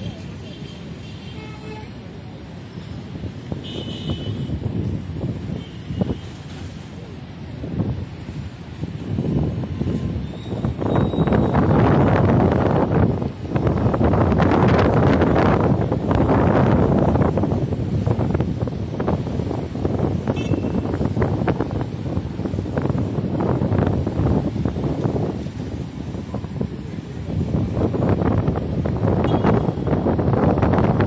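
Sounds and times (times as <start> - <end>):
wind buffeting microphone: 2.6 - 31.0.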